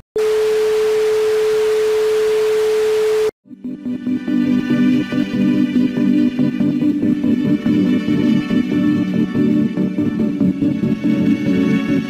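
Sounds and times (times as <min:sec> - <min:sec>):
steady electronic tone: 0:00.2 - 0:12.0
electronic music: 0:03.4 - 0:12.0.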